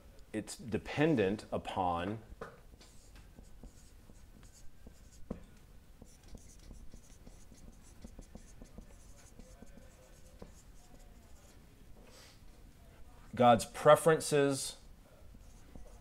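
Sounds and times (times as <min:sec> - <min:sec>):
marker squeaking on whiteboard: 0:02.8 - 0:11.5, 0:15.3 - 0:16.0.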